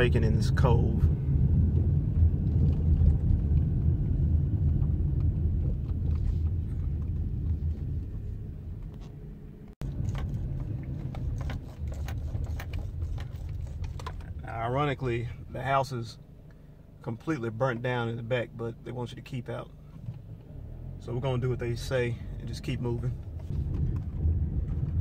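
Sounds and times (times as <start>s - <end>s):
car rumble from inside cabin: 0.0s - 25.0s.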